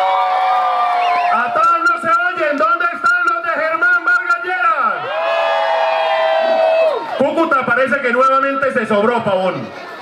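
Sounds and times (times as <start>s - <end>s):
rally crowd: 0.0s - 10.0s
man shouting into microphone: 1.3s - 5.2s.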